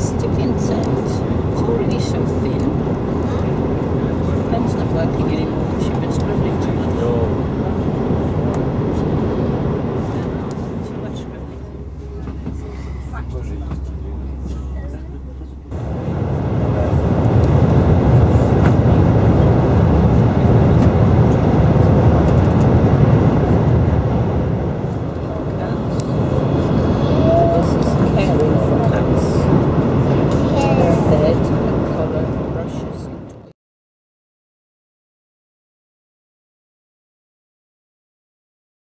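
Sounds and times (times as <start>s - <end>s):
high-speed train rumble inside coach: 0.0s - 33.5s.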